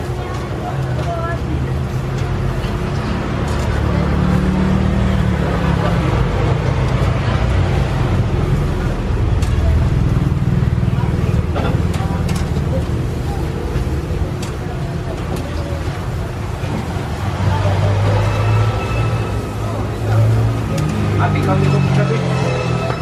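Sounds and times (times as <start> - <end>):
road traffic rumble: 0.0 - 23.0
vehicle running close by: 2.4 - 13.1.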